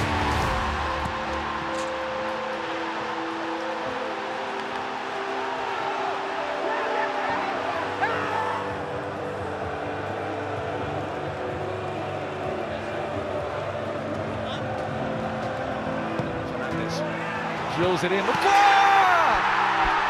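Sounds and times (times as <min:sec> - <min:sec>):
background music with held notes: 0:00.0 - 0:20.0
stadium crowd cheering and singing: 0:00.0 - 0:20.0.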